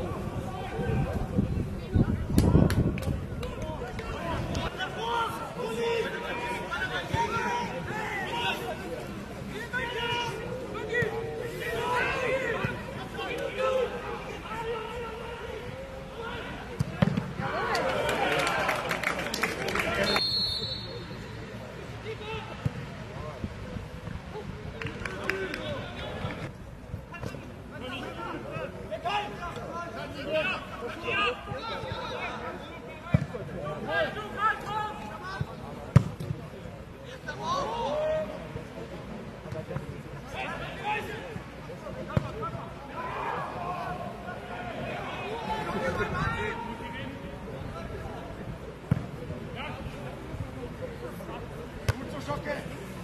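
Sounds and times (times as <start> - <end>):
players shouting: 3.4 - 21.2, 42.0 - 48.0.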